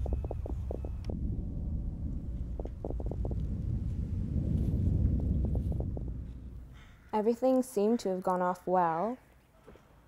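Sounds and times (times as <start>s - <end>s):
low rumbling drone: 0.0s - 7.2s.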